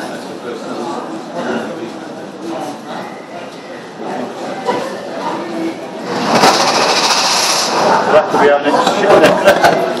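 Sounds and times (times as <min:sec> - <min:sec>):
loud rattling clatter: 0:06.0 - 0:08.2
rushing hiss: 0:06.1 - 0:08.0.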